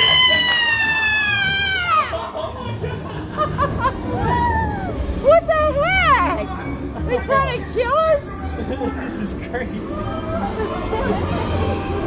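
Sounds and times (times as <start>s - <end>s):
shrill high-pitched scream: 0.0s - 2.0s.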